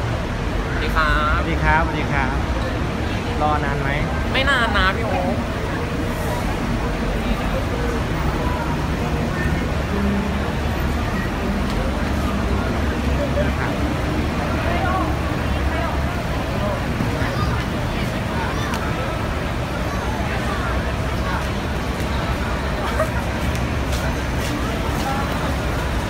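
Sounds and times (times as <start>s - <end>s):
road traffic rumble: 0.0s - 26.0s
buses idling: 4.0s - 26.0s.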